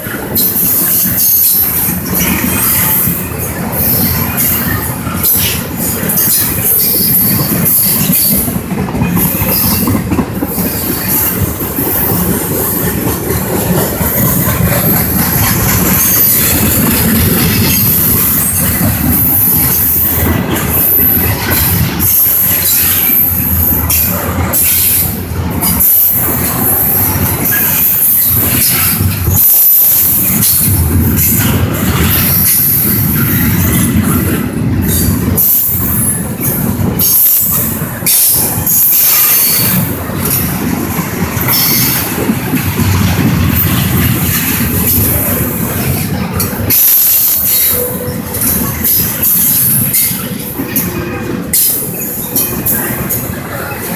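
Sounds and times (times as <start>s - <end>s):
train wheels rumbling on rail: 0.0s - 53.9s.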